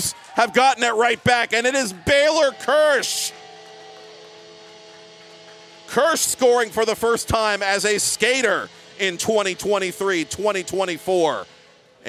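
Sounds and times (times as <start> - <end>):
steady hum of held tones: 0.0 - 12.0.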